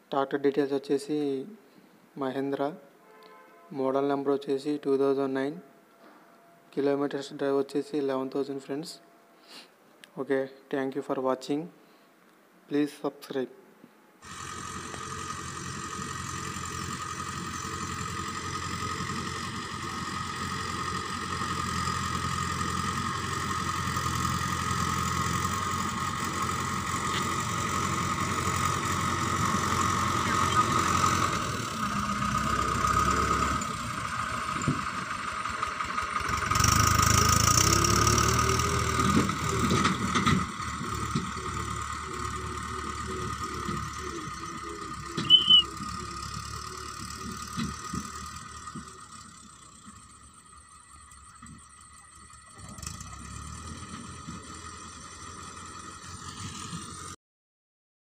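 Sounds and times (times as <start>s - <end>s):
tractor diesel engine under load: 14.2s - 57.2s
short sharp high-pitched sound: 45.2s - 45.8s.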